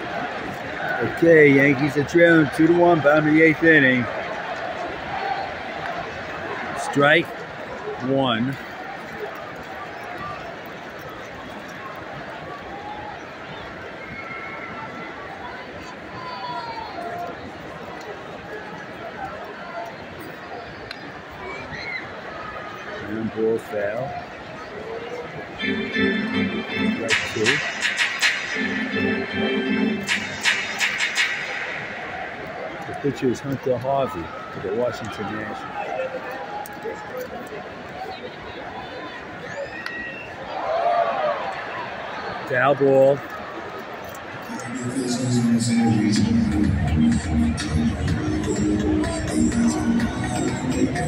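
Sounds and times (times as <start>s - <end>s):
stadium crowd hubbub: 0.0s - 51.0s
stadium organ: 25.6s - 35.4s.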